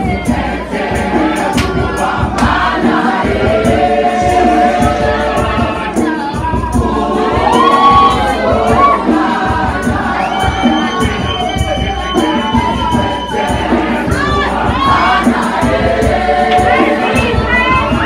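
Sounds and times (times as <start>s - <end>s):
choir singing: 0.0s - 18.0s
audience cheering: 7.2s - 9.2s, 10.0s - 15.2s.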